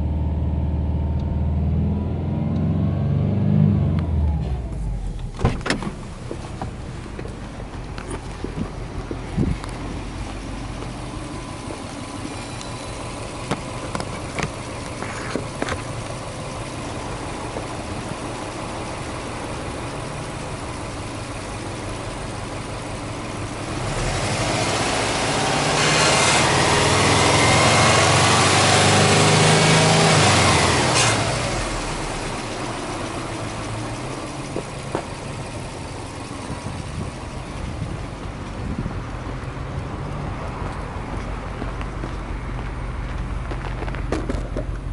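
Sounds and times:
car engine idling and revving: 0.0s - 44.9s.

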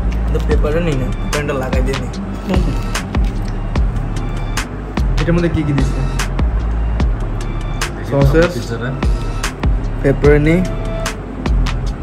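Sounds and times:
background music with steady beat: 0.0s - 12.0s
continuous low bass: 0.0s - 12.0s.

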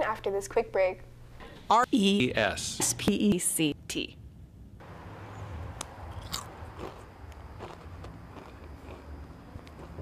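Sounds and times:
potato chip crunching: 6.2s - 9.1s.

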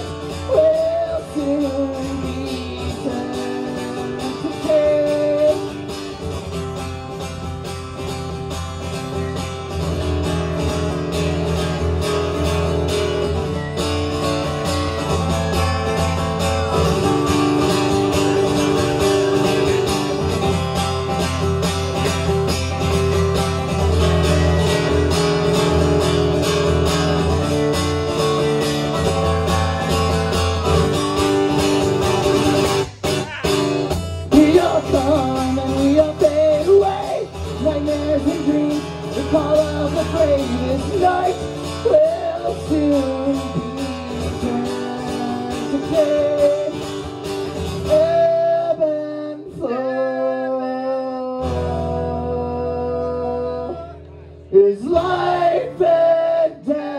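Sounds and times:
acoustic guitar playing: 0.0s - 56.9s.

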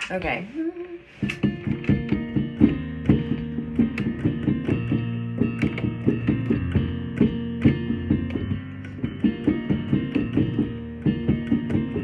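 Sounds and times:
keyboard melody over chords: 1.3s - 12.0s.

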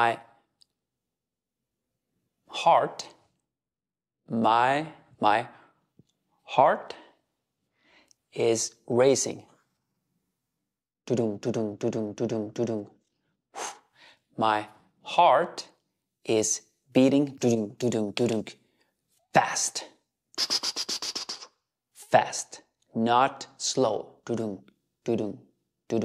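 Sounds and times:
sharp breath: 20.4s - 21.6s.

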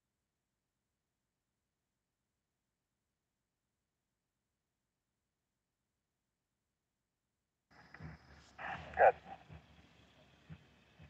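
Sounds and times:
short animal calls: 7.9s - 9.6s.

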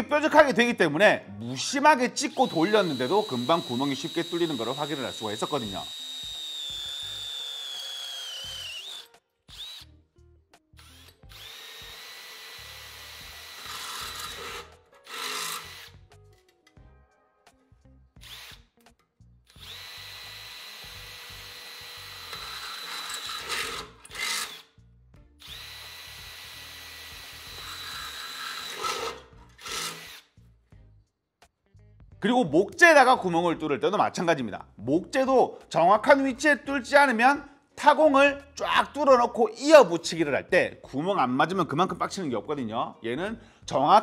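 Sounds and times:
cordless drill whining through metal: 2.3s - 9.9s, 10.8s - 16.0s, 18.2s - 18.7s, 19.5s - 24.8s, 25.4s - 30.3s.

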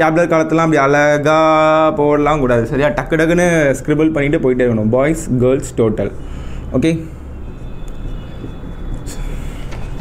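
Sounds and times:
marker squeaking on whiteboard: 7.4s - 10.0s.

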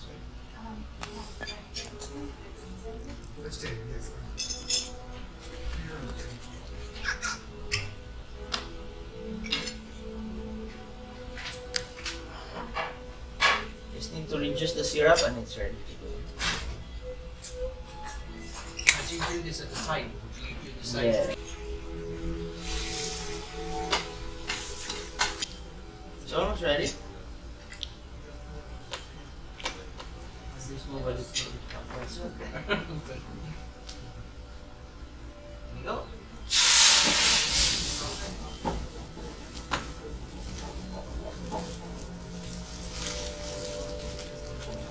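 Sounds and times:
liqueur hissing in hot pan: 22.5s - 25.2s, 36.5s - 38.6s
syrup sizzling in a pan: 36.5s - 38.3s.

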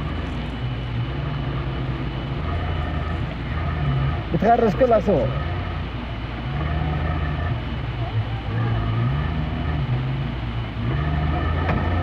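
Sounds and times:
vehicle engine revving: 0.0s - 12.0s.

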